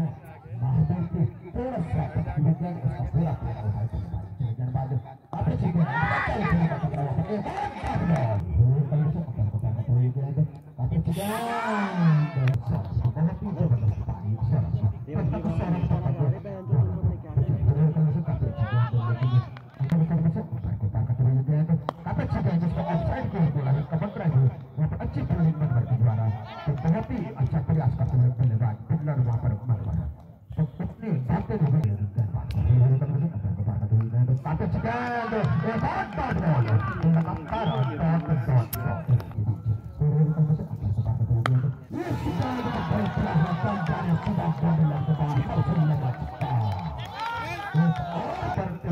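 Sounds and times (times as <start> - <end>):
men talking and calling out: 0.0 - 48.9.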